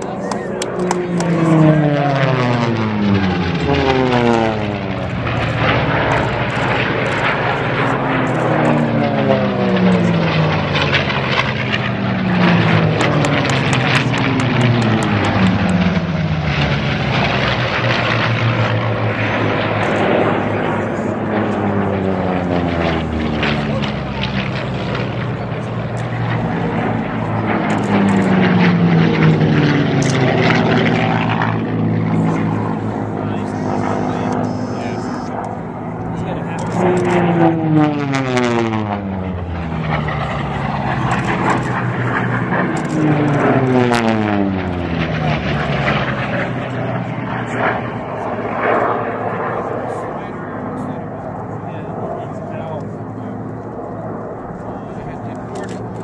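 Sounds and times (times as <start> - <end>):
propeller airplanes passing low: 0.0 - 56.0.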